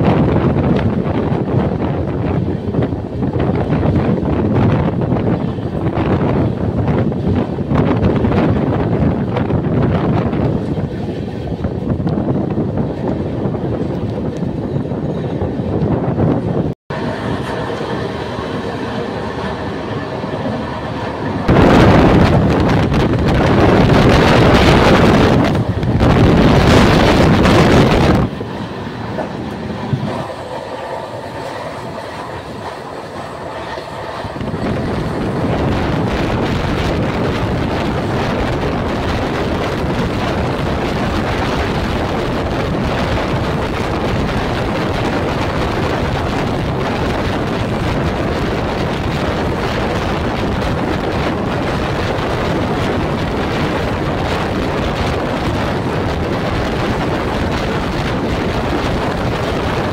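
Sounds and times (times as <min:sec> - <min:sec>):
train running rumble: 0:00.0 - 0:59.9
wind on microphone: 0:00.0 - 0:59.9.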